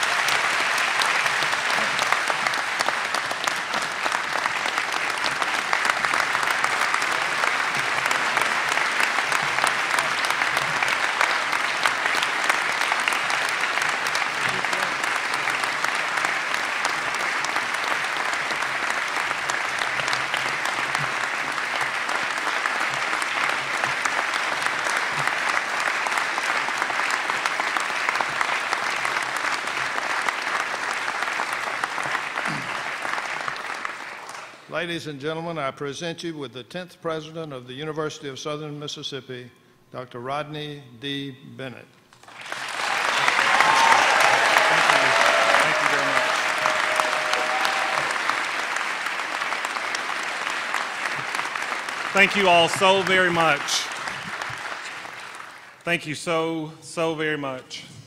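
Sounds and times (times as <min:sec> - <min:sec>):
audience applauding: 0:00.0 - 0:34.7, 0:42.2 - 0:56.6.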